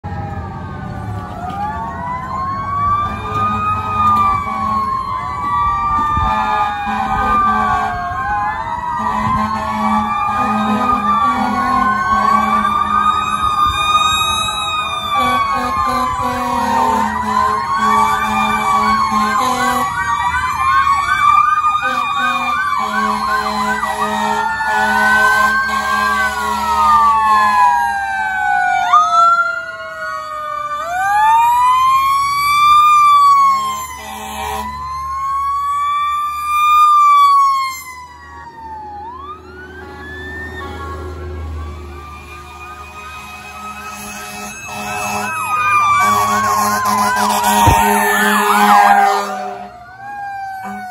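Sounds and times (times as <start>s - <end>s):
emergency sirens wailing and yelping: 0.0s - 50.9s
fire engine engine rumble: 0.0s - 50.9s
air horn blasts: 3.0s - 4.9s, 6.2s - 8.0s, 9.0s - 12.8s, 15.0s - 20.0s, 21.8s - 27.6s, 33.5s - 34.8s, 42.8s - 49.7s, 50.6s - 50.9s.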